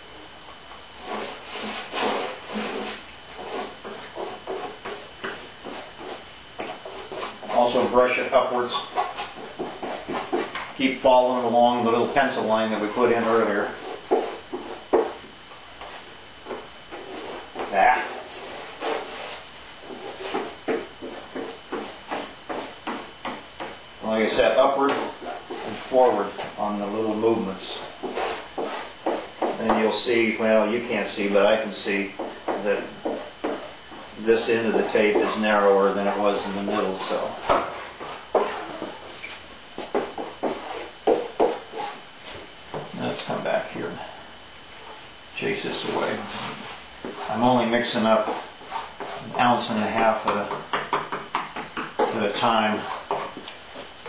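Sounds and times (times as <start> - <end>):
brush strokes on wet epoxy: 1.0 - 14.9, 15.8 - 21.6, 24.0 - 42.5, 44.7 - 50.5, 52.1 - 54.0.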